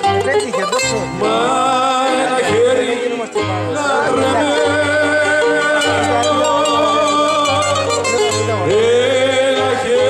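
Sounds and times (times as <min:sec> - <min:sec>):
plucked-string accompaniment: 0:00.0 - 0:10.0
man singing into a microphone: 0:00.9 - 0:10.0.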